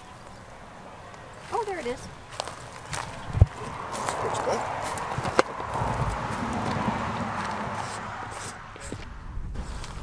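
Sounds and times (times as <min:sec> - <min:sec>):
branches and twigs rustling: 0:00.0 - 0:10.0.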